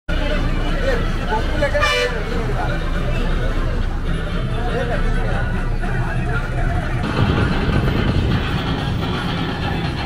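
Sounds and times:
people talking: 0.1s - 8.1s
bus engine idling: 0.1s - 10.0s
vehicle horn toot: 1.8s - 2.3s.

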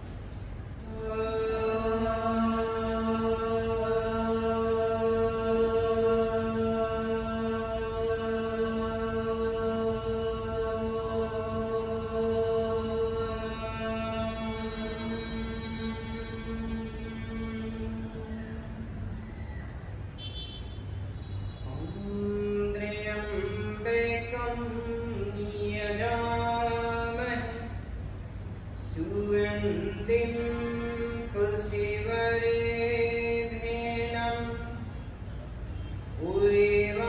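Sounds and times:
person chanting: 0.8s - 19.1s, 21.7s - 27.8s, 28.8s - 34.8s, 36.2s - 37.0s.

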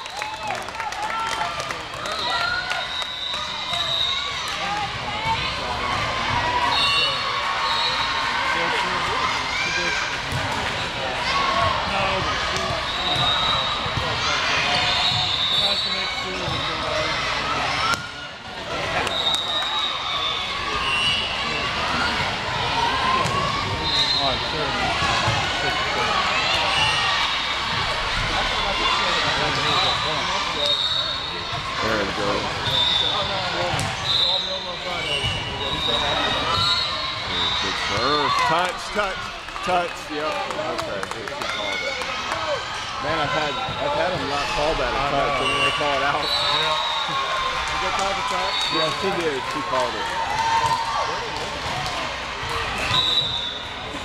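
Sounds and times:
many overlapping voices: 3.6s - 54.0s.

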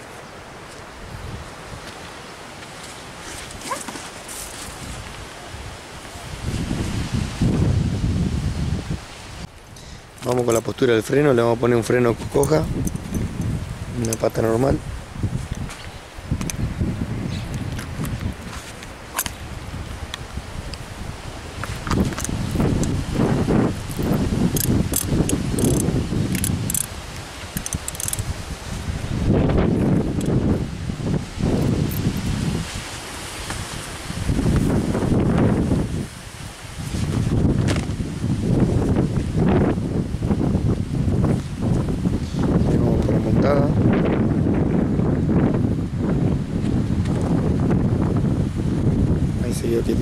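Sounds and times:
wind rumbling on microphone: 0.0s - 50.0s
horse bit chain jingling: 12.4s - 14.3s, 23.9s - 28.3s.

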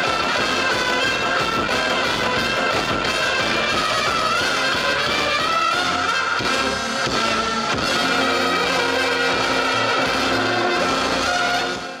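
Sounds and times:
brass band playing: 0.0s - 12.0s
drums: 0.0s - 12.0s
trumpets playing melody: 0.0s - 12.0s
tuba: 0.0s - 12.0s.

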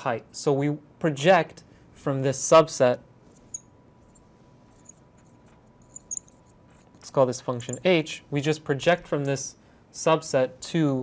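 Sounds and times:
marker squeaking on glass: 3.3s - 8.0s.

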